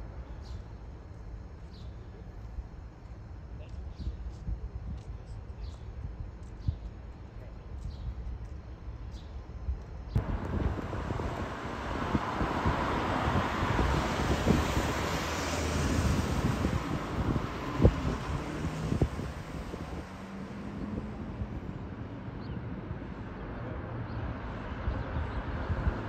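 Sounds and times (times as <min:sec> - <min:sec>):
wind buffeting microphone: 0:10.2 - 0:22.5, 0:24.8 - 0:26.0.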